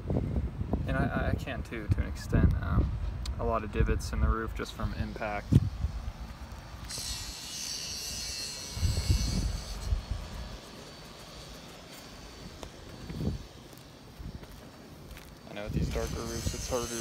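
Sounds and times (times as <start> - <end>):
high thin insect-like buzz: 6.8 - 14.4, 15.2 - 17.0.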